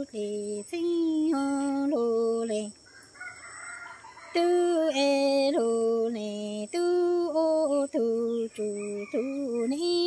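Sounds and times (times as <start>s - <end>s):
faint rooster crow: 2.9s - 5.0s, 8.5s - 10.0s.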